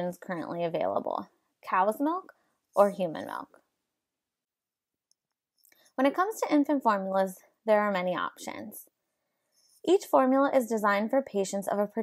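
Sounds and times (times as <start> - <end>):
woman narrating: 0.0 - 3.6, 5.7 - 9.0, 9.8 - 12.0
soft breath: 9.1 - 9.8.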